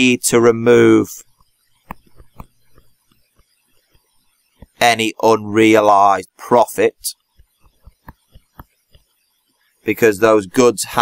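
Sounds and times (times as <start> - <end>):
stylus tapping on a tablet: 1.2 - 4.8, 7.2 - 9.2.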